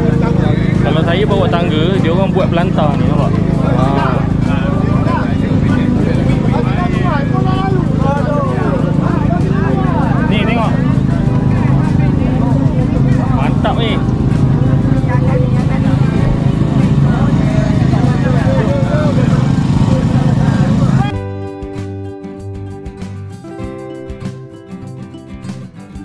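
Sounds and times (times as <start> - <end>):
steady low hum: 0.0 - 21.2
background music with plucked guitar: 0.0 - 26.0
crowd chatter: 0.0 - 26.0.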